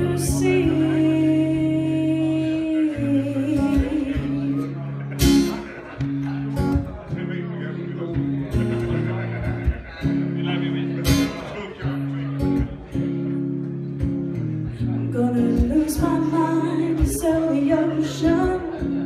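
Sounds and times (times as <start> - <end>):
acoustic guitar strumming chords: 0.0 - 19.0.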